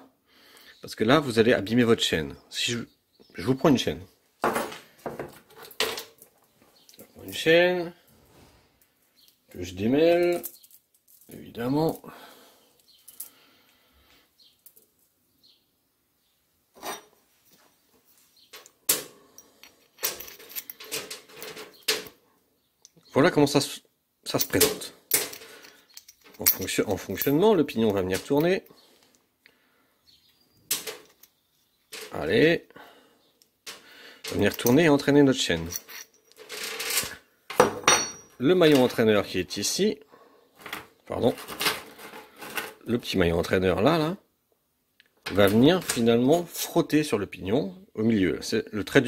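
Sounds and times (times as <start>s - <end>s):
saw chain clinking and rattling: 18.4s - 22.2s, 24.3s - 28.7s, 34.2s - 39.0s
saw chain rattling: 19.4s - 22.1s, 35.6s - 37.2s
metal part clinking on workbench: 34.3s - 34.9s, 35.5s - 36.5s, 37.5s - 39.0s.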